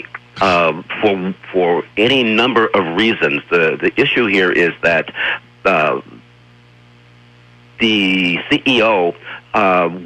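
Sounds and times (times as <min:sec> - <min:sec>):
man speaking: 0:00.0 - 0:06.2, 0:07.8 - 0:10.0
low electrical hum: 0:00.0 - 0:10.0.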